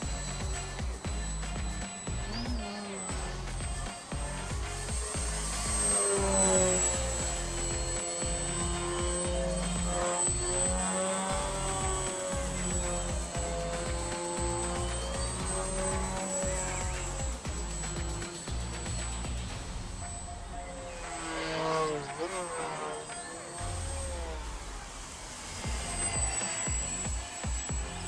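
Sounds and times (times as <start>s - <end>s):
background music: 0.0s - 28.0s
model plane motor whine: 0.0s - 28.0s.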